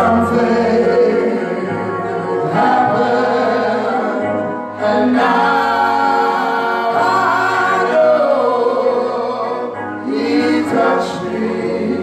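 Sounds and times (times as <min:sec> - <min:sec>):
group gospel singing: 0:00.0 - 0:12.0.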